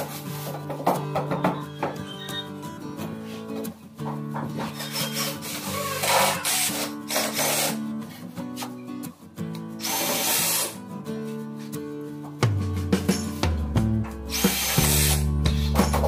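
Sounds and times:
background music: 0.0s - 16.0s
cordless drill driving screws: 4.8s - 7.8s, 9.8s - 10.8s, 14.3s - 15.2s.

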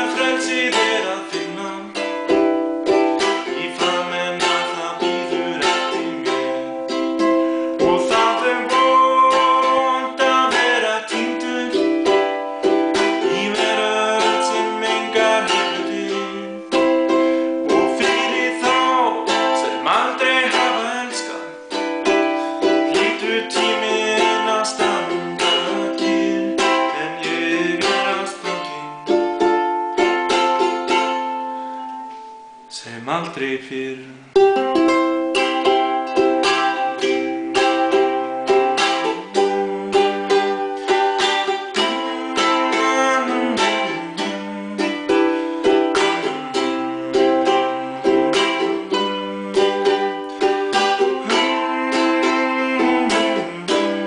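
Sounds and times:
man singing: 0.0s - 29.8s, 32.7s - 54.0s
ukulele strumming: 0.0s - 54.0s.

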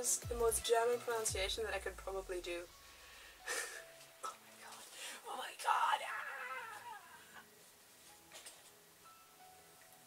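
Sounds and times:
woman laughing softly: 3.4s - 4.0s
woman's falling vocal sound: 5.9s - 7.5s.

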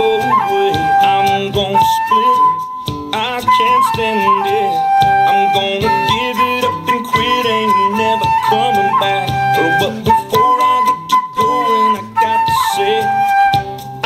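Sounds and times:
country-rock band with drums: 0.0s - 14.0s
flute melody: 0.0s - 14.0s.

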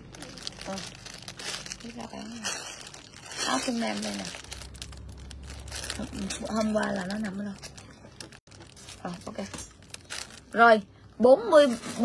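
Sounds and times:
plastic bag crinkling: 0.0s - 10.8s.

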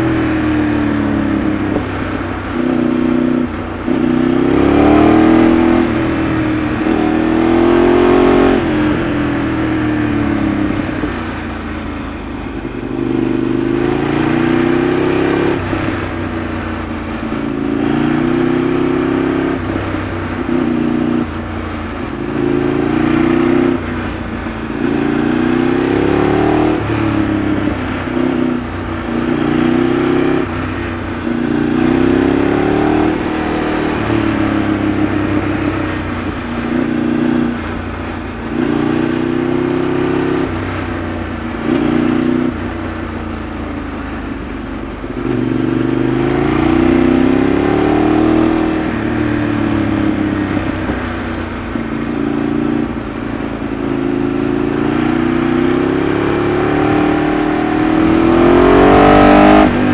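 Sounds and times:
motorcycle engine revving: 0.0s - 59.9s.

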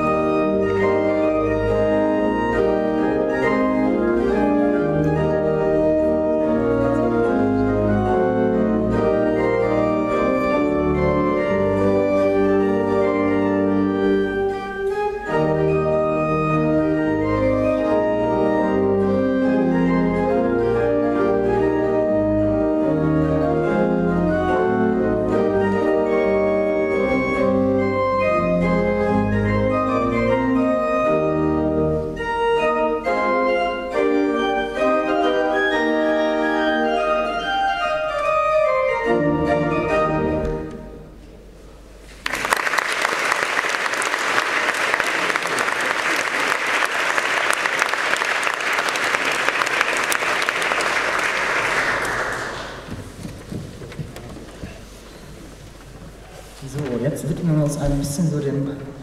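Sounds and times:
keyboard playing organ-like chords: 0.0s - 42.0s
audience applauding: 42.1s - 53.2s.

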